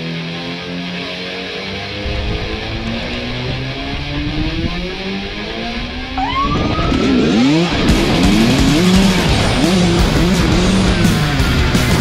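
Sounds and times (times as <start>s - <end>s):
music: 0.0s - 12.0s
dirt bike engine revving: 0.6s - 12.0s.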